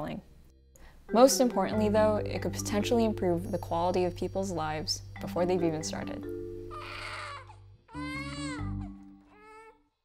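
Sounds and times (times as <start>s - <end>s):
sustained music notes: 0.6s - 9.3s
baby crying: 6.7s - 10.0s.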